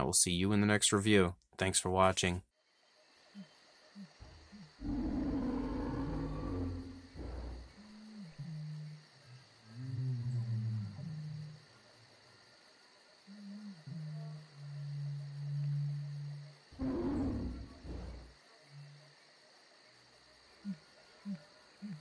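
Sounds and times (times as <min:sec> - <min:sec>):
large animal calls: 0:03.4 - 0:09.0, 0:13.4 - 0:19.0.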